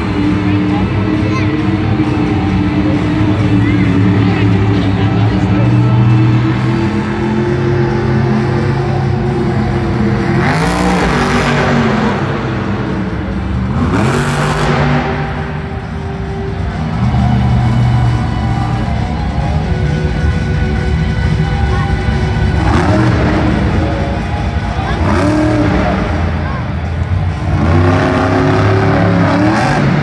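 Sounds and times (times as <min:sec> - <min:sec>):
music playing: 0:00.0 - 0:30.0
truck engine revving: 0:00.0 - 0:30.0.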